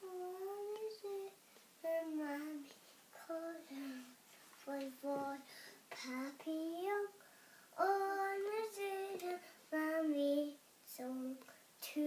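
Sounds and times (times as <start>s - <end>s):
boy singing: 0.0s - 12.0s.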